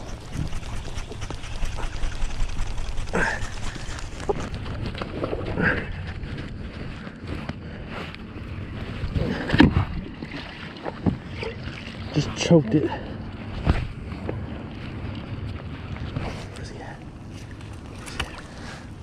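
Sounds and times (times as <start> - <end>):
jacket fabric brushing microphone: 0.0 - 4.6
wind on microphone: 0.0 - 11.7.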